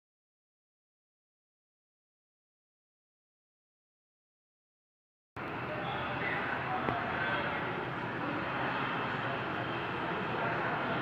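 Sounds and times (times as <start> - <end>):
turboprop engines running: 5.4 - 11.0.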